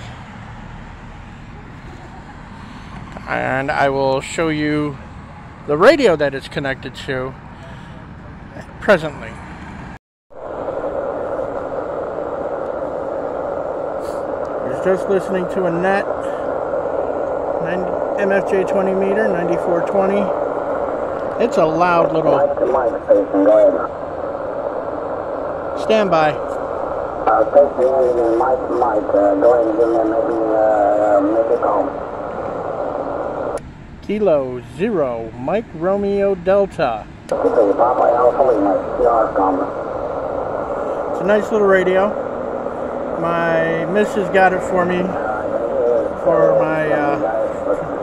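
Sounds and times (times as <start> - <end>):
muffled radio hiss: 1.4 - 5.1, 5.7 - 9.4, 10.4 - 48.0
garbled radio voices: 5.6 - 9.4, 13.9 - 23.9, 25.7 - 48.0.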